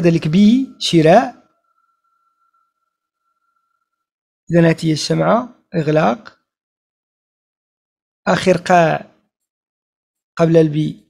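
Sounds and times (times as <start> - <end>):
faint high-pitched tone: 0.0 - 4.1.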